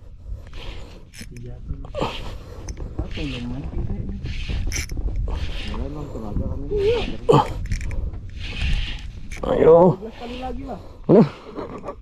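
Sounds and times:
wind rumble on microphone: 0.0 - 12.0
fishing reel noise: 0.5 - 1.4, 4.2 - 5.8, 6.8 - 10.6.

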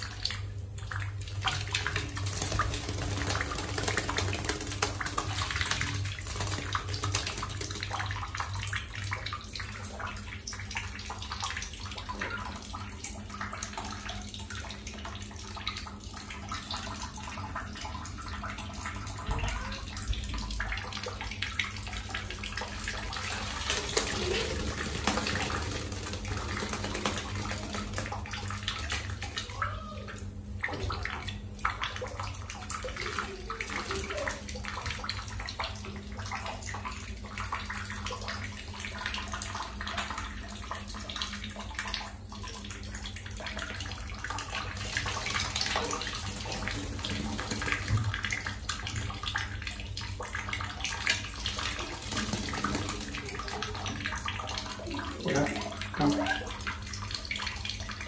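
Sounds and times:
bird wings beating in water: 1.4 - 9.3, 21.9 - 29.7, 43.9 - 49.5, 50.2 - 56.5
water splashing: 21.9 - 29.8, 42.7 - 58.0.

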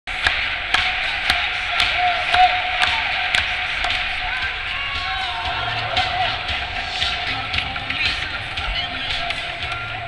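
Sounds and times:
crowd noise: 0.1 - 10.0
rhythmic crowd clapping: 0.1 - 10.0.

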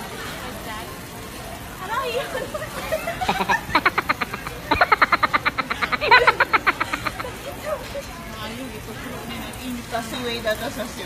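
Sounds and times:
women giggling: 2.1 - 7.8.

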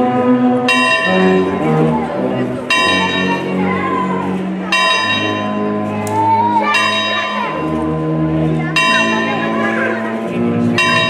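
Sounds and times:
large bell ringing: 0.0 - 11.0
wind band brass chords: 0.0 - 11.0.

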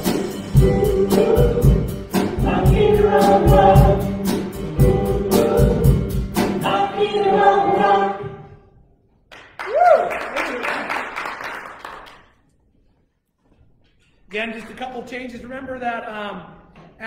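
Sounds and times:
worship band with singing: 0.0 - 8.6.

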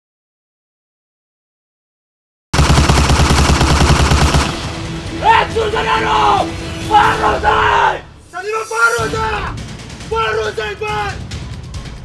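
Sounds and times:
automatic gunfire: 2.6 - 4.8
man shouting: 5.1 - 11.2.

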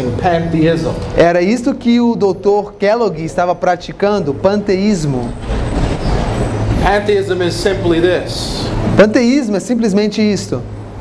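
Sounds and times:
man speaking: 0.0 - 5.4, 6.8 - 10.7.

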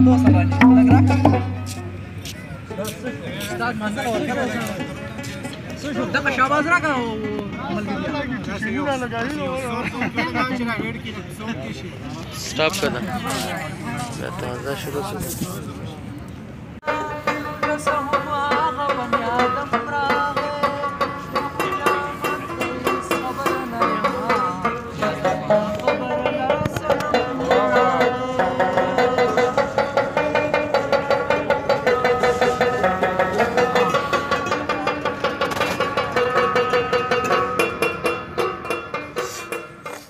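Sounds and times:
clay-pot drum beating: 0.0 - 2.2, 16.8 - 40.0
plucked lute strokes: 0.0 - 2.4.

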